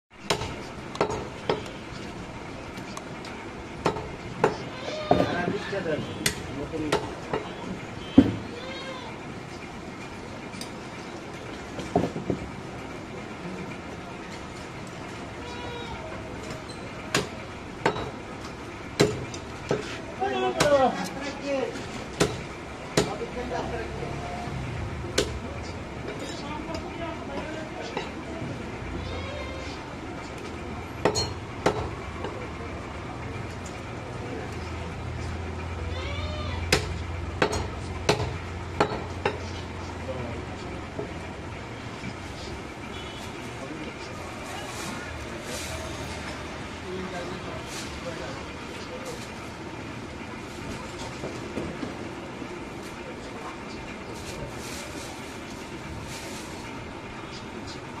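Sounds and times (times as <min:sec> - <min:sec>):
distant voices: 0:00.1 - 0:58.0.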